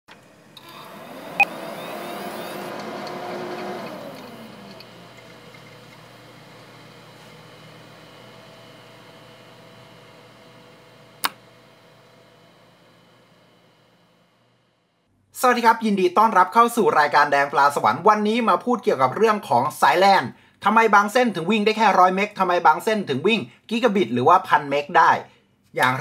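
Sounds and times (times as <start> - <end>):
computer whirring: 0.1 - 15.1.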